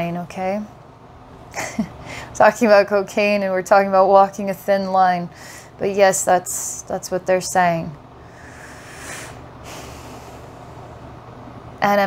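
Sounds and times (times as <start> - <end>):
low room hum: 0.0 - 12.0
breath drawn in: 8.2 - 10.8.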